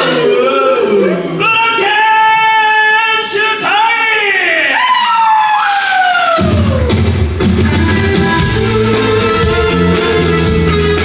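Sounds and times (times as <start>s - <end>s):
rock band bass and drums: 6.4s - 11.0s.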